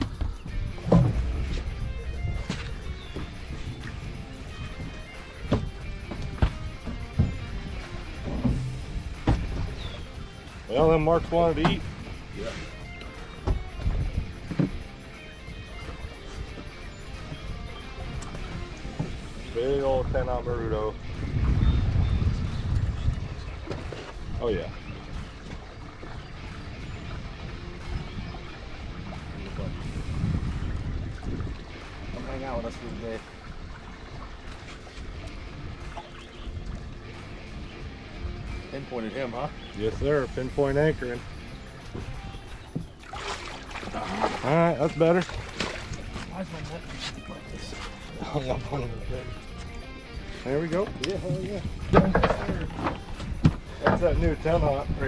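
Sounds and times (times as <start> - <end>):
background music: 0.0 - 55.0
wind buffeting microphone: 0.0 - 55.0.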